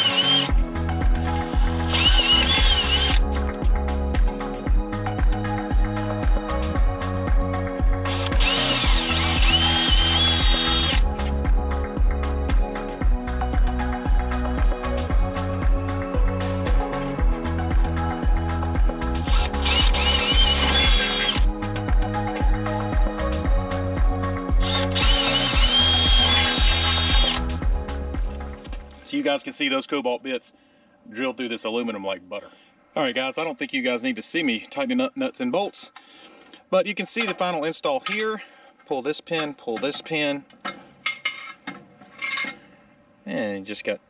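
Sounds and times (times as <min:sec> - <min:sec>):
cordless drill whining: 0:00.0 - 0:00.6, 0:01.2 - 0:03.3, 0:08.1 - 0:11.1, 0:19.3 - 0:21.5, 0:24.6 - 0:27.5
background music with steady beat: 0:00.0 - 0:29.2.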